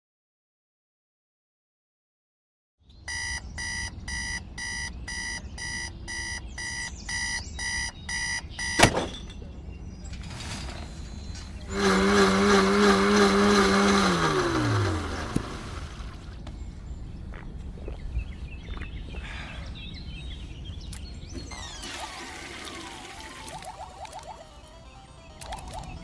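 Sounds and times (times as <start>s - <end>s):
alarm clock beeping: 3.1s - 8.8s.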